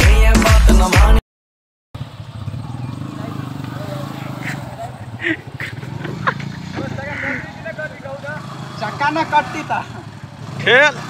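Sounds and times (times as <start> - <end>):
motorcycle engine running: 2.0 - 11.0
voices calling out: 2.2 - 11.0.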